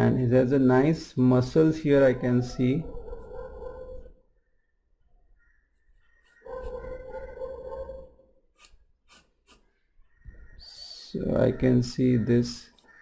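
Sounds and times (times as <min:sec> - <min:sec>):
pencil scratching on paper: 0:06.1 - 0:09.9.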